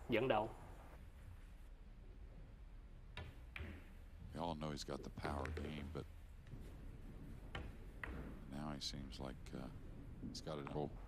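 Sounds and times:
pool balls clicking: 3.1s - 4.0s, 5.2s - 6.7s, 7.4s - 8.6s.

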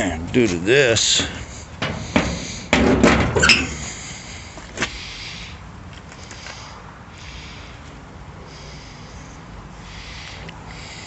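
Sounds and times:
metal body panels clattering: 1.0s - 4.0s.

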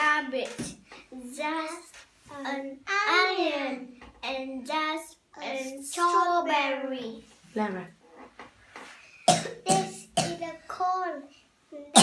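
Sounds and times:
sharp coughs: 9.3s - 10.4s.

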